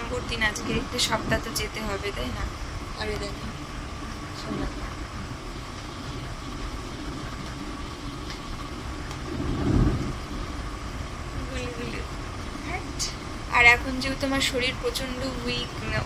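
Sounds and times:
low rumble: 0.0 - 16.0
steady background noise: 0.0 - 16.0.

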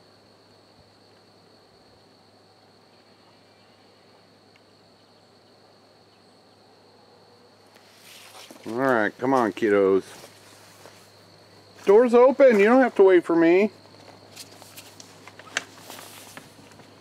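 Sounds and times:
high-pitched insect trill: 0.0 - 17.0.

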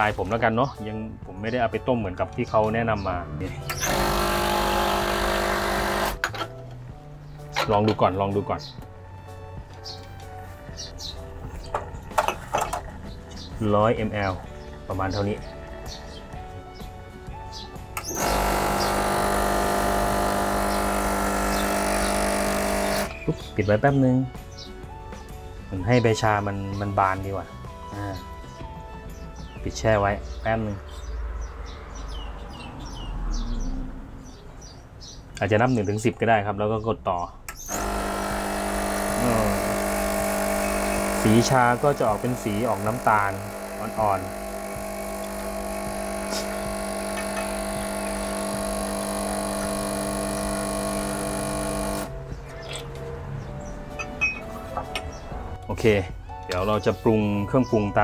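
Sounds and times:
espresso machine pump humming: 3.7 - 6.3, 18.0 - 23.2, 37.6 - 52.1
small birds chirping: 9.8 - 18.2, 22.9 - 37.8, 52.3 - 55.4
steam wand hissing: 37.7 - 52.1.

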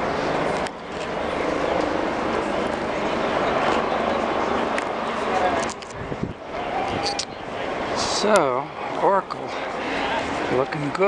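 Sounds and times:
crowd murmuring: 0.0 - 11.0
wind rumbling on microphone: 0.0 - 11.0.

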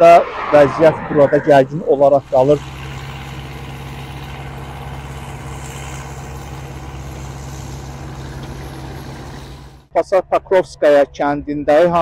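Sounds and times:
machine engine running: 2.2 - 9.9.

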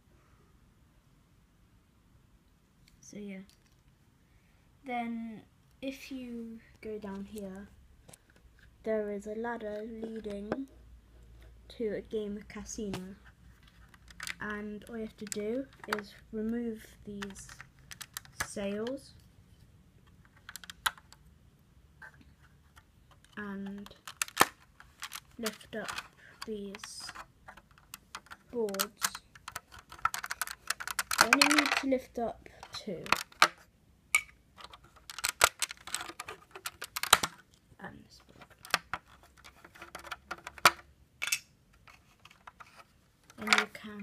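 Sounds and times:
plastic bricks clicking: 13.6 - 16.2, 17.2 - 18.8, 20.2 - 21.3, 22.7 - 31.9, 32.6 - 33.6, 34.2 - 37.5, 38.3 - 43.8.

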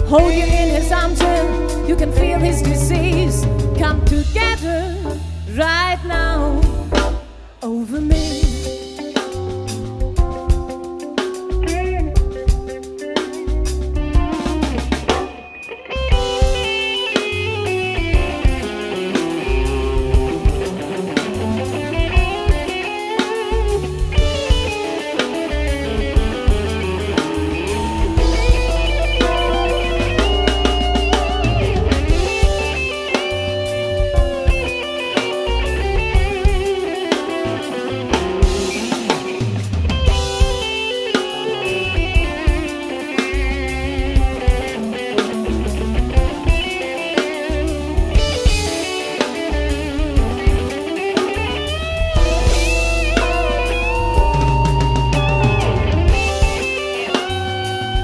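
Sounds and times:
electric guitar lines: 0.0 - 5.6, 8.2 - 58.0
deep bass line: 0.0 - 8.8, 19.5 - 20.8, 21.4 - 22.6, 25.5 - 34.7, 35.5 - 36.6, 51.4 - 58.0
drum kit beat: 0.0 - 58.0
keyboard: 0.0 - 58.0.

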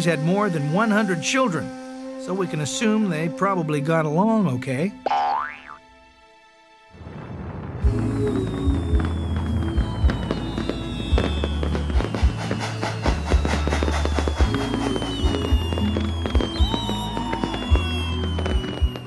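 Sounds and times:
thin whistling gliding tones: 7.9 - 19.0.

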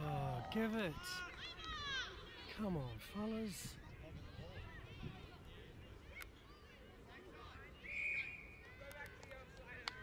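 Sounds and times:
shrill whistle blast: 7.8 - 8.6.

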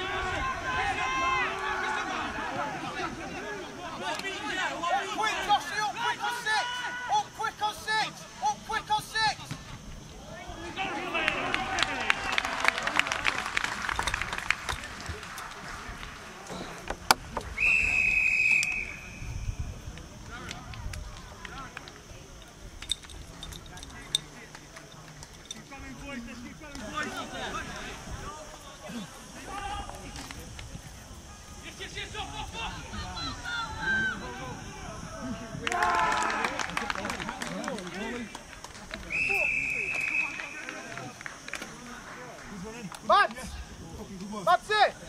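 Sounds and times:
players and spectators shouting: 0.0 - 13.2, 26.1 - 30.5, 31.1 - 38.3
referee's whistle blast: 17.5 - 19.4, 39.1 - 40.7.

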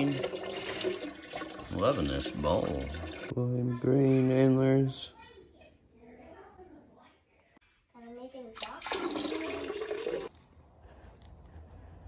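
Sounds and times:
water pouring and splashing: 0.0 - 3.3, 8.6 - 10.3.

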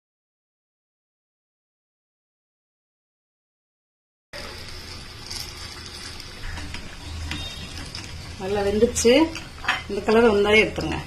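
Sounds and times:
oil sizzling and bubbling: 4.4 - 11.0.

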